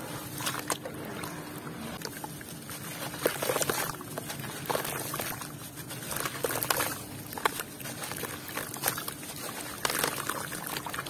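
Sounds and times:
hands swishing through wet slurry: 0.0s - 11.0s.

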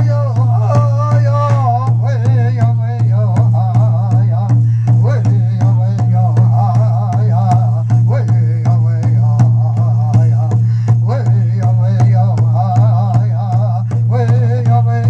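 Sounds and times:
drum beating steady rhythm: 0.0s - 15.0s
voices singing wavering chant: 0.0s - 15.0s.

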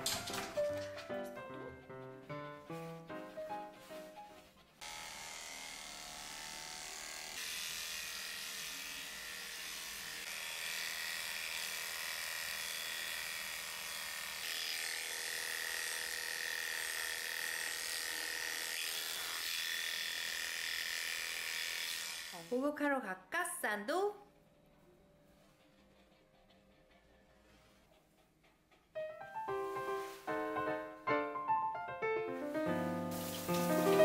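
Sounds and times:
background music: 0.0s - 4.6s, 29.0s - 34.0s
electric hair clippers buzzing: 4.8s - 22.4s.

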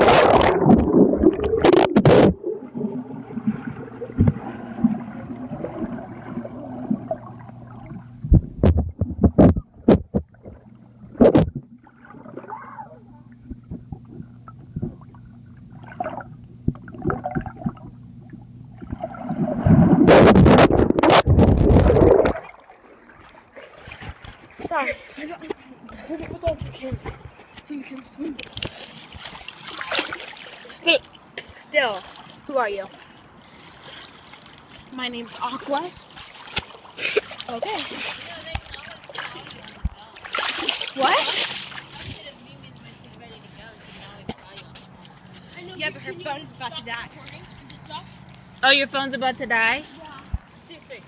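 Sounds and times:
steady low hum: 0.0s - 29.8s
pool water splashing: 0.0s - 51.0s.

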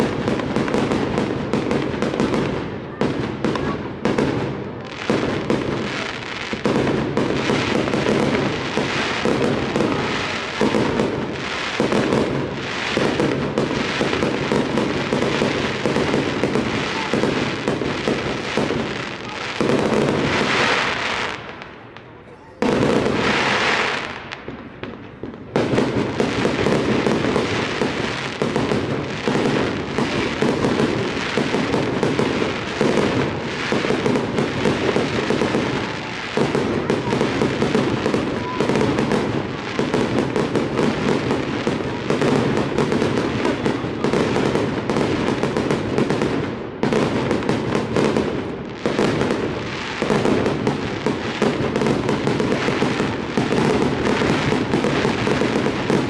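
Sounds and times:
fireworks bursting and crackling: 0.0s - 56.0s.

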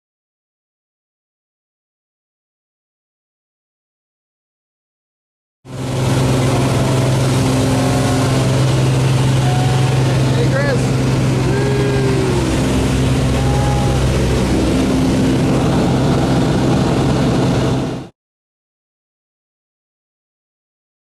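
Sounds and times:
propeller aircraft engine drone: 5.7s - 18.1s
faint voices: 6.3s - 16.6s.

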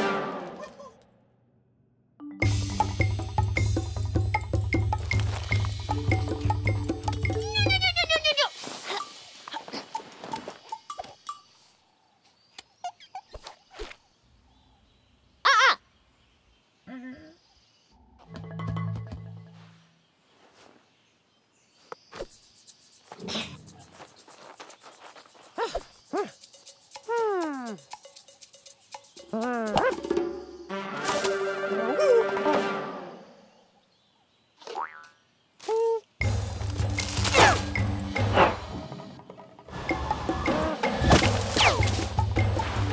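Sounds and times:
light music: 2.2s - 8.3s, 36.2s - 42.9s.

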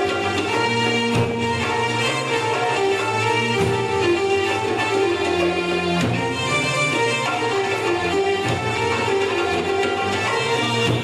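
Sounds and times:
oriental dance band music: 0.0s - 11.0s.

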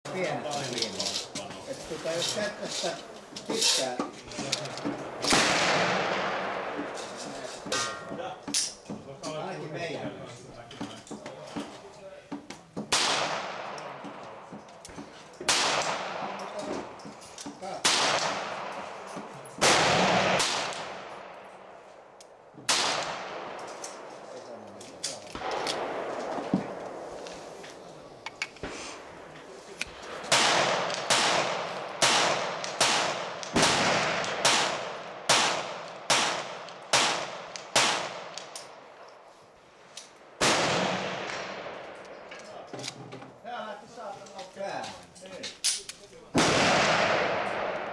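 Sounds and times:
suppressed pistol shots: 29.9s - 38.6s, 46.4s - 47.9s.

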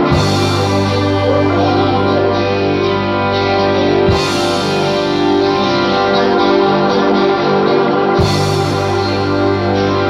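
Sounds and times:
keyboard sustained chords: 0.0s - 10.0s.

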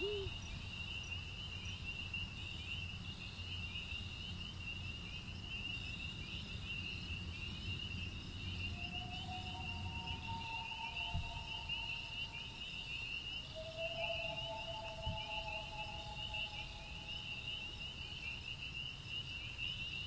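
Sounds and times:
night insects trilling: 0.0s - 20.0s
soft ambient music: 8.7s - 12.9s, 13.5s - 17.9s.

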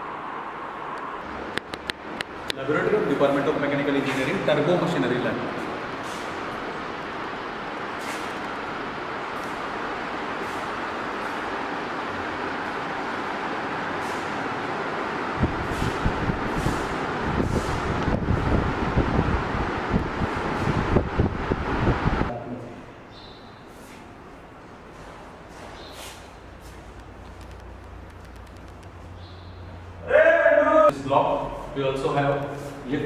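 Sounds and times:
steady rushing noise: 0.0s - 22.3s.

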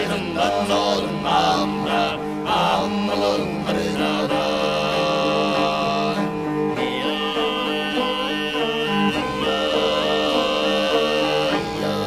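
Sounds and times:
song with sustained sung note: 0.0s - 12.0s.

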